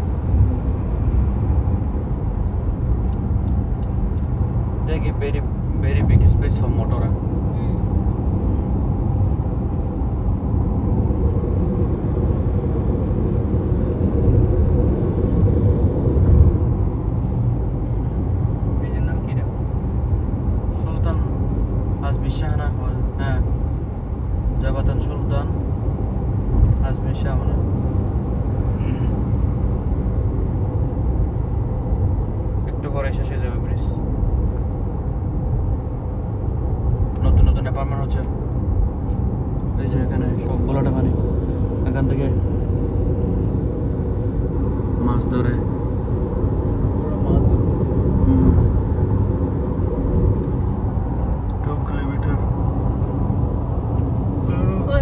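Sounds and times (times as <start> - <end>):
road and tyre rumble in car: 0.0 - 55.0.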